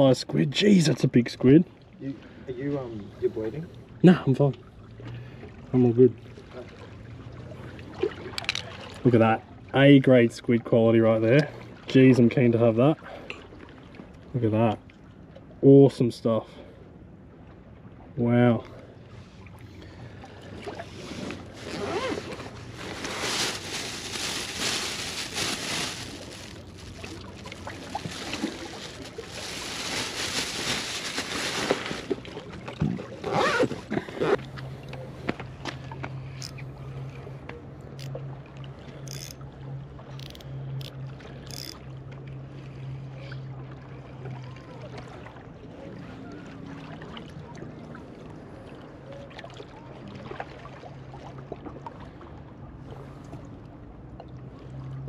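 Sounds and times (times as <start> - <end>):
small splashes: 4.8 - 9.1, 19.2 - 36.4
low steady hum: 12.9 - 55.0
small waves sloshing against rocks: 19.2 - 35.6
gear clattering in a bag: 21.4 - 32.2.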